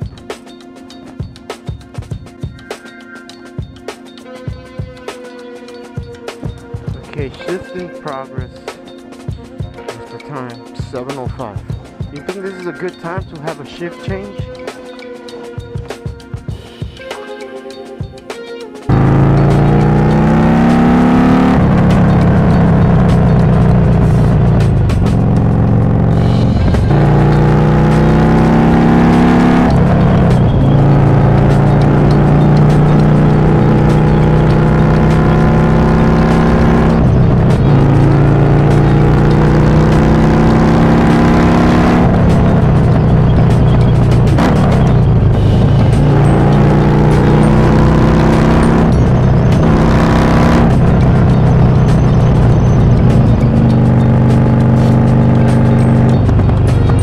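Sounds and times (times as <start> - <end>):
motorcycle engine accelerating: 18.9 - 57.0.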